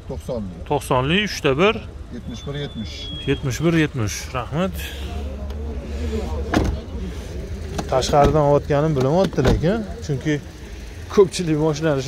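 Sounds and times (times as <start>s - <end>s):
faint voices: 2.0s - 12.0s
car door shutting: 6.4s - 7.0s, 7.6s - 9.8s.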